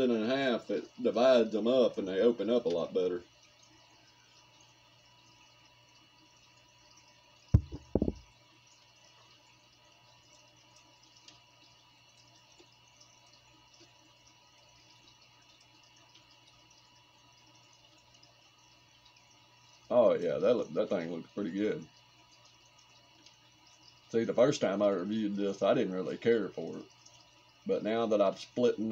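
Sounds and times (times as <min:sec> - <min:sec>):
aquarium filter humming: 0:00.0 - 0:28.9
water trickling: 0:00.0 - 0:28.9
loud low thumps: 0:07.6 - 0:08.2.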